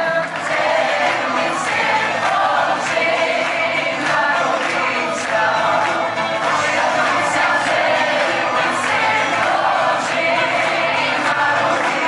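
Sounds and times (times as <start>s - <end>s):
group singing a carol: 0.0s - 12.0s
hand clapping: 0.0s - 12.0s.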